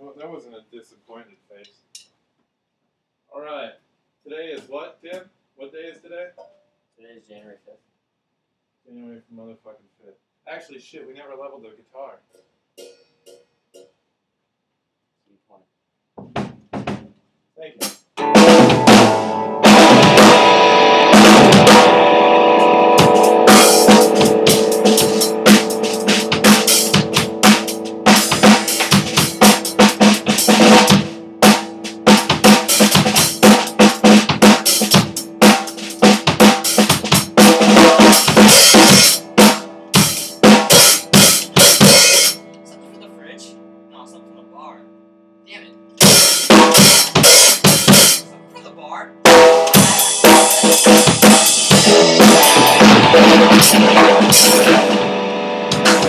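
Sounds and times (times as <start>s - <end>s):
drum kit playing: 16.2s - 42.6s, 46.0s - 56.0s.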